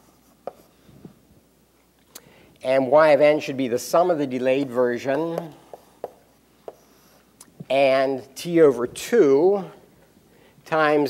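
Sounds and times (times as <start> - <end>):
chalk tapping on blackboard: 0.4 - 0.7, 5.3 - 7.0.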